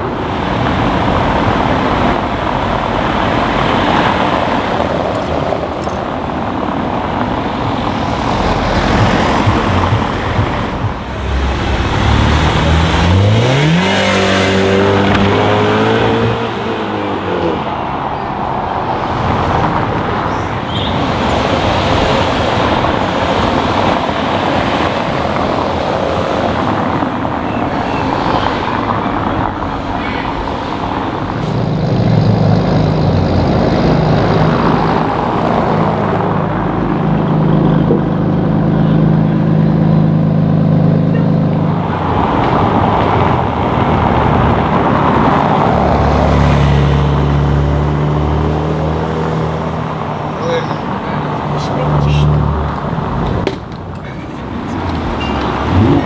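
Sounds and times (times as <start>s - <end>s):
car accelerating: 0.0s - 56.0s
tyre and traffic noise: 0.0s - 56.0s.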